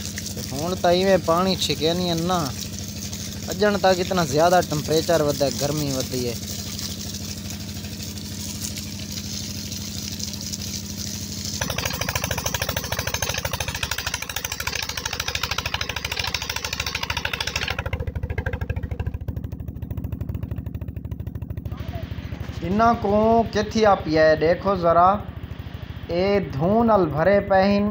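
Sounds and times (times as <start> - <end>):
water gushing and splashing: 0.0 - 19.2
stationary engine running: 0.0 - 27.9.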